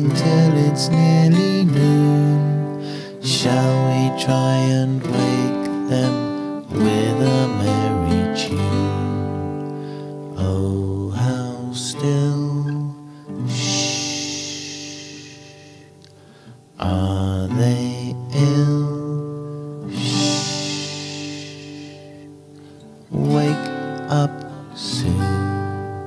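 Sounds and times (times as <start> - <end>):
children's song over acoustic guitar: 0.0 - 26.0
drawn-out shushing hush: 13.5 - 16.0, 19.9 - 22.9.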